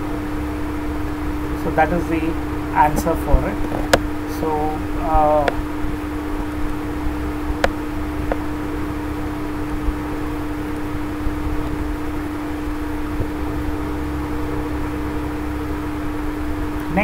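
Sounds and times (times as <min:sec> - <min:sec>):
low rumble and hiss: 0:00.0 - 0:17.0
steady background hum: 0:00.0 - 0:17.0.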